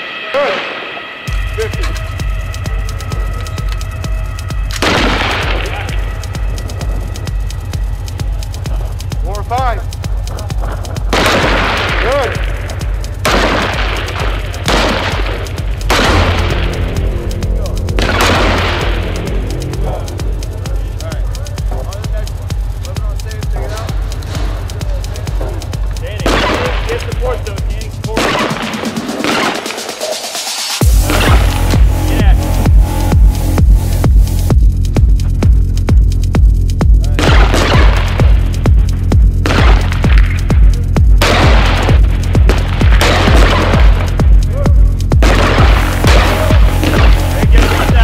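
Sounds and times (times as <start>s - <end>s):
electronic music with bass beat: 1.3s - 48.0s.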